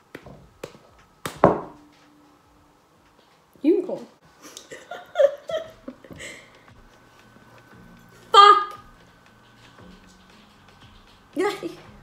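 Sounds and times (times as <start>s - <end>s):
fist knocking on head: 1.2s - 1.8s.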